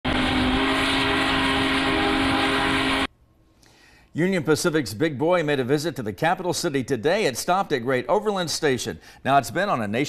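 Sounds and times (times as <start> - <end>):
loud rushing noise: 0.0 - 3.1
steam locomotive whistle: 0.0 - 3.1.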